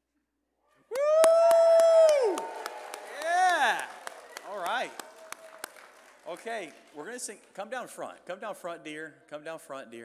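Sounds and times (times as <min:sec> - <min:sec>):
people whooping: 0:00.9 - 0:05.8
hand claps: 0:00.9 - 0:07.8.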